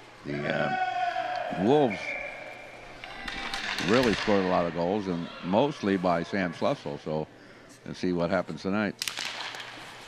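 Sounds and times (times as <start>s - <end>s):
hockey sticks clacking on ice: 3.0s - 4.5s, 9.0s - 10.0s.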